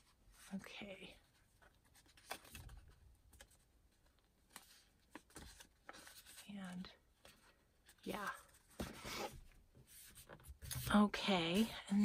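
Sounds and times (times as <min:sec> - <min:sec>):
paper rustling: 0:01.6 - 0:11.8.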